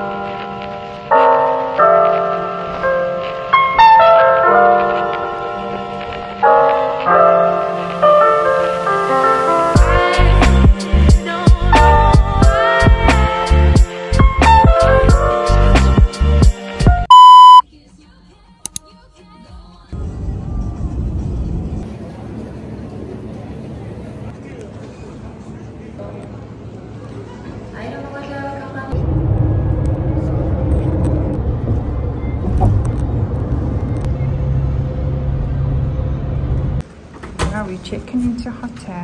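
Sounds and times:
loud electronic beep: 0:17.1 - 0:17.6
road and engine rumble inside van: 0:19.9 - 0:39.0.

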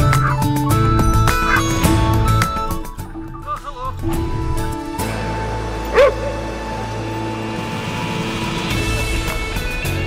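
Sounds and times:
music with long held tones: 0:00.0 - 0:10.0.

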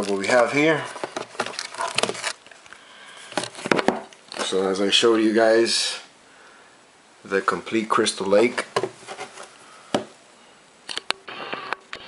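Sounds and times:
cardboard packaging rustling: 0:00.0 - 0:02.6, 0:03.2 - 0:04.6
knocks and scrapes on cardboard: 0:08.8 - 0:10.1.

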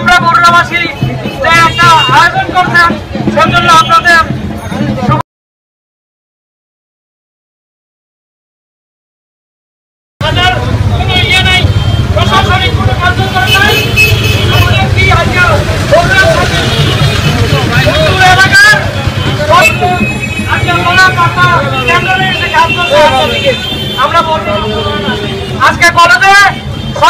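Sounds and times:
people talking: 0:10.2 - 0:26.6
traffic rumble: 0:10.2 - 0:27.0.

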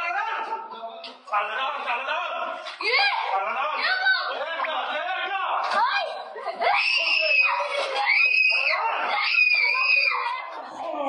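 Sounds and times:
children screaming: 0:06.6 - 0:10.5.

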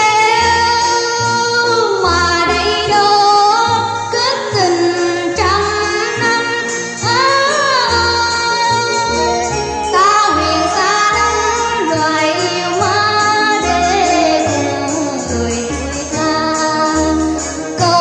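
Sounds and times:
instrumental ensemble: 0:00.0 - 0:18.0
woman singing: 0:00.0 - 0:18.0.

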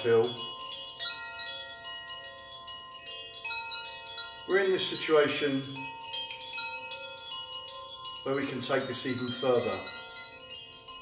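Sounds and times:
man's voice: 0:00.0 - 0:00.5, 0:04.5 - 0:05.9, 0:08.3 - 0:10.0
chimes ringing: 0:00.0 - 0:11.0.

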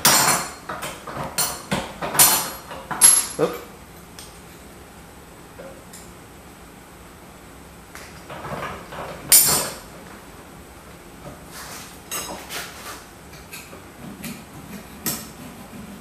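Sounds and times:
metal tools clinking on workbench: 0:01.4 - 0:03.5.

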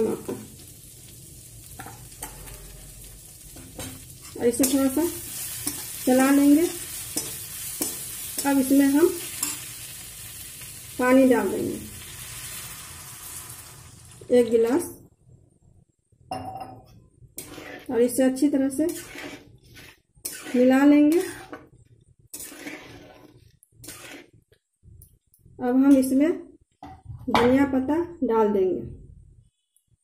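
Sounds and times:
vegetables sizzling in oil: 0:00.0 - 0:15.0, 0:17.4 - 0:21.6
spatula scraping pan: 0:01.8 - 0:02.9, 0:03.6 - 0:10.0, 0:17.4 - 0:24.4.

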